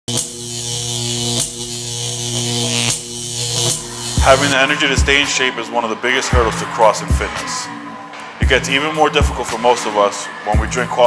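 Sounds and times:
electric buzz: 0.1s - 5.7s.

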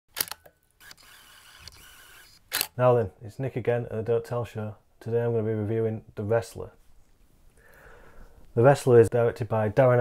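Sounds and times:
faint steady hiss: 0.6s - 10.0s.

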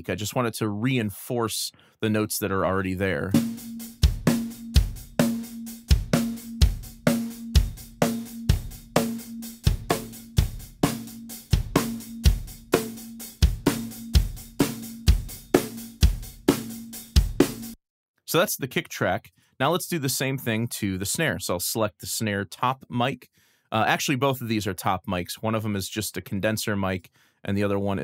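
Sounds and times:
acoustic drum kit beat: 3.3s - 17.8s.

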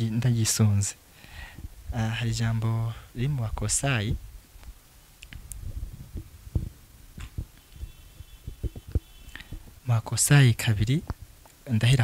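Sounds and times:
microphone handling thumps: 3.5s - 9.8s.

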